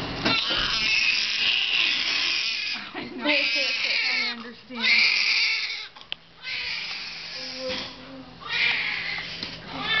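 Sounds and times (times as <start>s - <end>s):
newborn baby crying: 0.3s - 7.8s, 8.4s - 10.0s.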